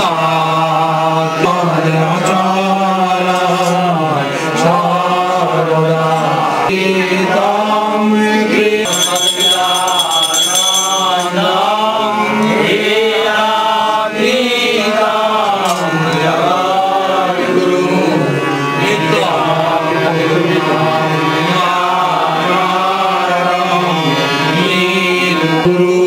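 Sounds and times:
person chanting: 0.0s - 26.0s
high steady tone: 8.9s - 11.4s.

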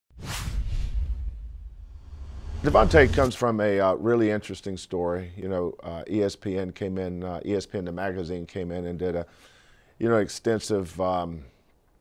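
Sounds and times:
whoosh: 0.1s - 3.4s
deep bass rumble: 0.8s - 3.3s.

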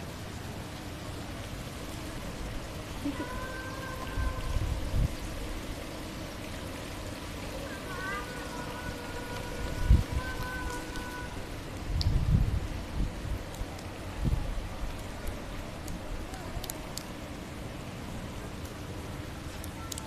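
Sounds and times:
running water hiss: 0.0s - 20.0s.

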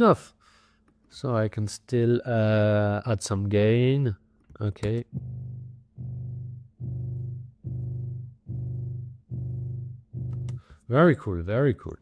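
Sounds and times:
low looping musical sample: 5.0s - 10.7s.

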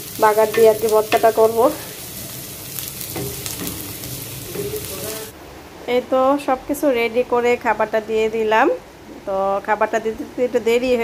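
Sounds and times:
onions sizzling in oil: 0.0s - 5.4s.

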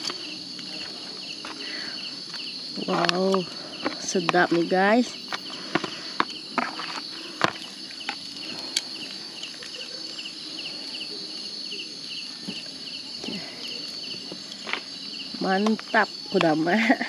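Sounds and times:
insect chirping: 0.0s - 17.0s
insects droning: 0.0s - 17.0s.

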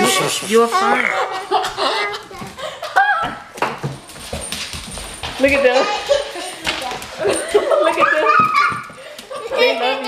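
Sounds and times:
dogs play-wrestling: 3.6s - 9.7s
people laughing and squealing: 5.8s - 10.0s.

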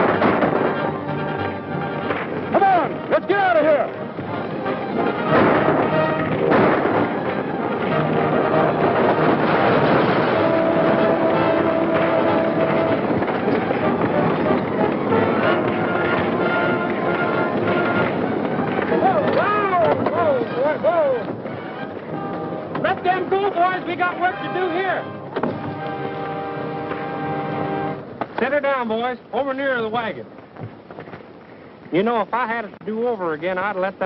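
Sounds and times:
gunshots: 0.0s - 2.9s, 5.1s - 20.4s
orchestral chase music: 0.0s - 28.6s.

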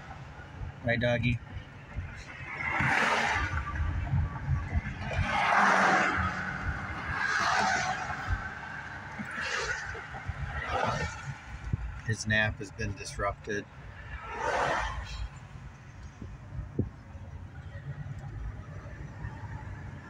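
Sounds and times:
car tyres and engine rumble: 0.0s - 20.0s.

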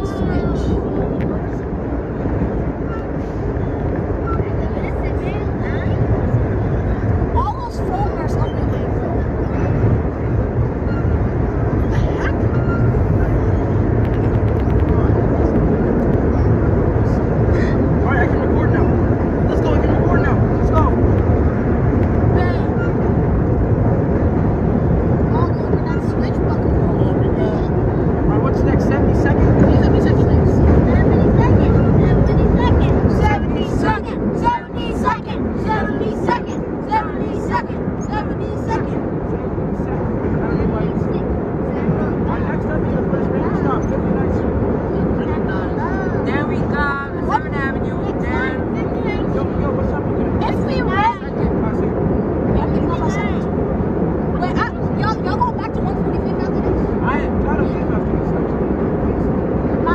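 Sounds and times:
wheels clicking and squealing on rail: 0.0s - 18.0s, 20.0s - 25.2s
subway train rumbling in tunnel: 0.0s - 59.9s.

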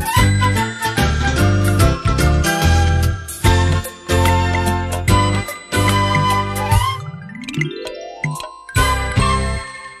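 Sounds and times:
chiming notes: 0.2s - 10.0s.

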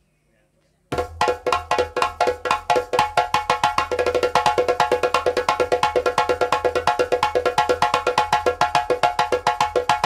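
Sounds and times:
hand drums struck fast: 0.9s - 10.0s.

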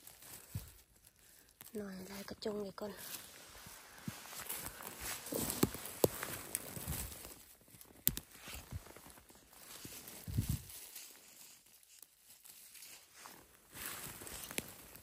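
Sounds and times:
footsteps in undergrowth: 0.0s - 15.0s
light crackles: 0.0s - 15.0s.

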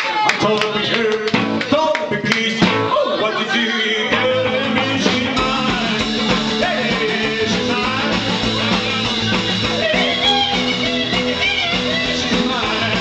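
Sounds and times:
rock and roll band playing: 0.4s - 13.0s
electric guitar strummed: 4.1s - 13.0s.

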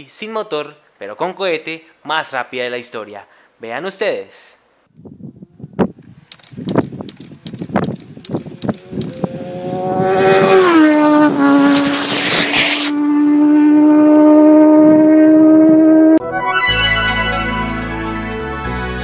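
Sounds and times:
rocket bicycle whine passing: 11.6s - 13.0s
burst of hiss: 11.7s - 12.9s.

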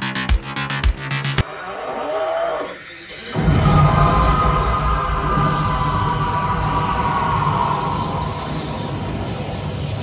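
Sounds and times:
high falling tone: 1.4s - 9.6s
rushing sound effects: 1.4s - 10.0s
low steady drone: 3.2s - 10.0s.

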